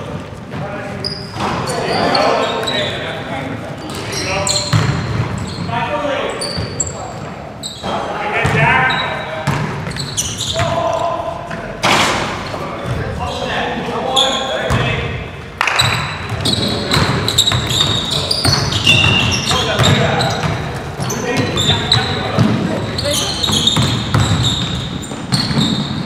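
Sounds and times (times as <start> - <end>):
sneakers squeaking on hardwood: 0.5 - 3.1, 3.8 - 11.2, 15.6 - 26.0
players calling out: 0.9 - 15.0, 15.6 - 26.0
basketball bouncing: 4.7 - 5.4, 8.4 - 8.6, 9.4 - 10.0, 15.8 - 26.0.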